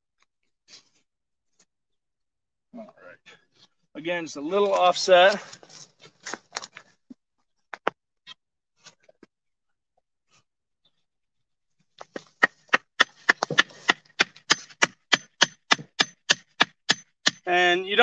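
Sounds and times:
scattered knocks: 0:12.0 - 0:17.5
stake hammered into soil: 0:12.0 - 0:17.6.

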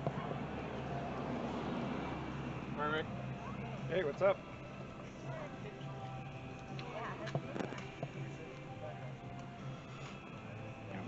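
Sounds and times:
distant people talking: 0:00.0 - 0:09.9.

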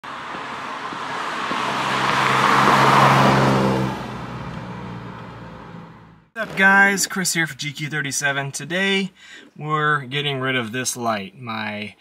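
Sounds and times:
car engine driving past: 0:00.1 - 0:06.3.

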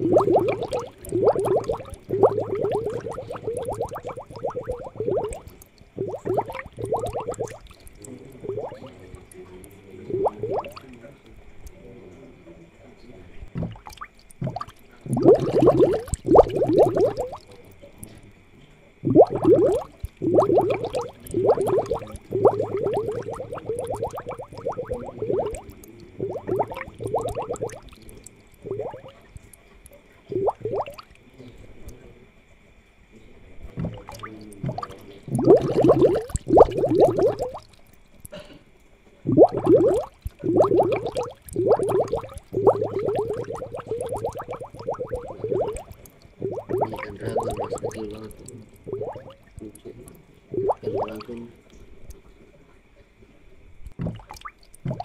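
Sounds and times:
aquarium water bubbling: 0:00.0 - 0:55.0.

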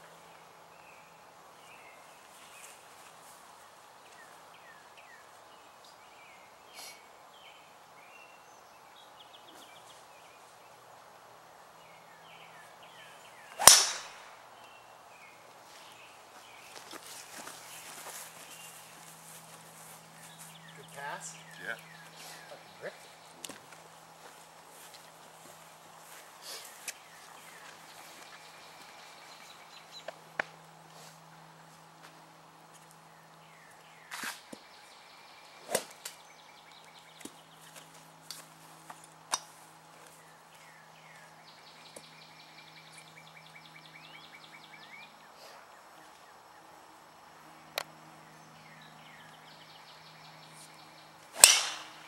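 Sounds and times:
golf club swish: 0:13.6 - 0:14.1
golf club striking ball: 0:13.6 - 0:14.3, 0:51.4 - 0:52.0.

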